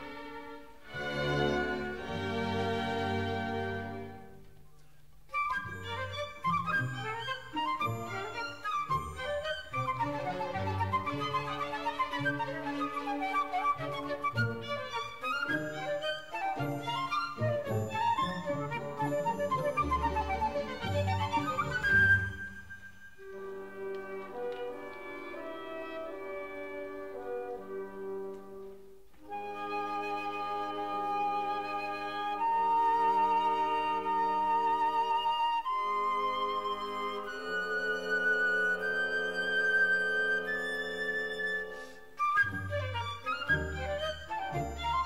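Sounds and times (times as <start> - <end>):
symphony orchestra: 0.0 - 45.0
solo flute with vibrato: 5.3 - 28.2, 29.2 - 45.0.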